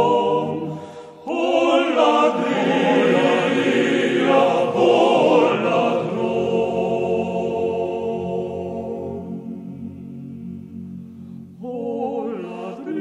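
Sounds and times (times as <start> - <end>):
mixed choir singing: 0.0 - 13.0.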